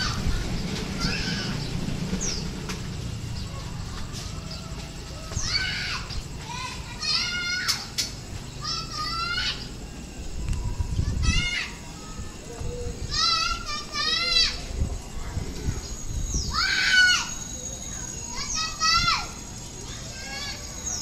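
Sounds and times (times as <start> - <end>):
children shouting: 0.0 - 21.0.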